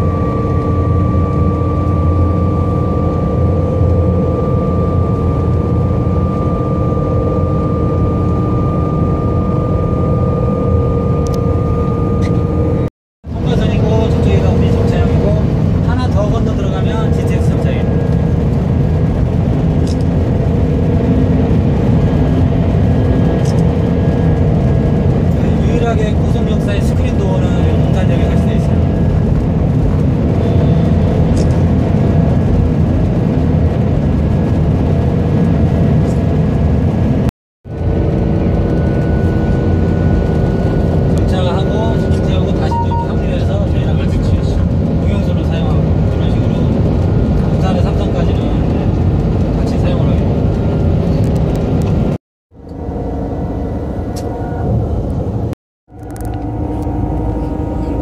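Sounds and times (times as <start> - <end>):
high whine: 0.0 - 58.0
train rumbling through tunnel: 11.6 - 58.0.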